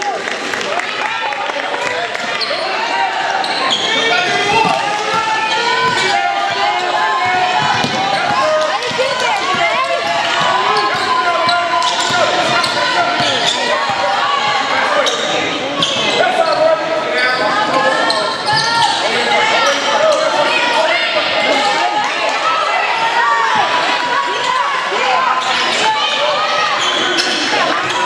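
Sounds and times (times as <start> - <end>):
sneakers squeaking: 2.2 - 20.7, 23.5 - 28.0
people calling out: 2.4 - 28.0.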